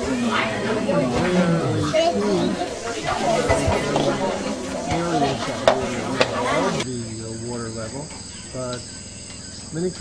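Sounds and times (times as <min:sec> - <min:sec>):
crowd chatter: 0:00.0 - 0:08.8
voices: 0:00.0 - 0:10.0
insect chirring: 0:06.8 - 0:10.0.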